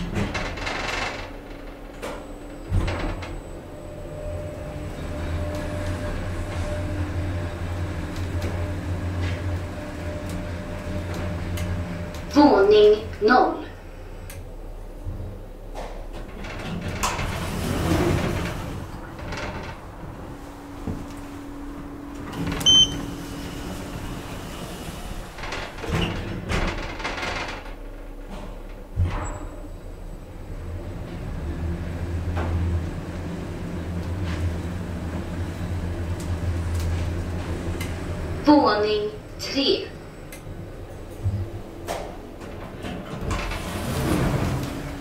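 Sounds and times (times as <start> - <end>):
elevator doors sliding: 0.0 - 45.0
elevator low hum: 0.0 - 45.0
elevator click: 14.2 - 45.0.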